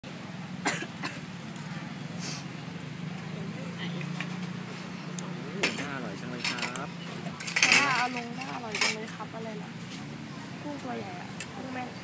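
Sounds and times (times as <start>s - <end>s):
voices in background: 1.2s - 12.0s
brief hiss: 2.2s - 2.5s.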